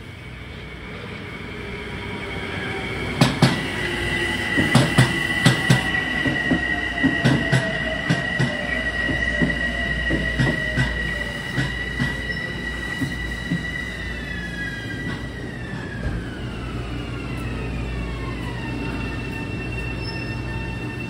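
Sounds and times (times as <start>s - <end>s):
train whine falling in pitch: 0.5s - 21.0s
high wheel squeal: 1.0s - 15.8s, 18.6s - 21.0s.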